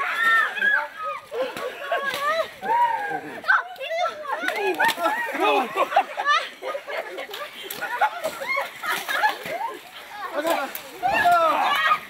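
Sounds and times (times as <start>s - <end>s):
people shouting and laughing: 0.0s - 12.0s.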